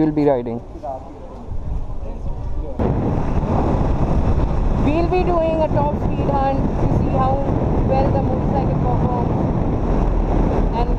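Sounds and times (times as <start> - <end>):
wind buffeting microphone: 0.6 - 10.9
low background rumble: 2.0 - 10.9.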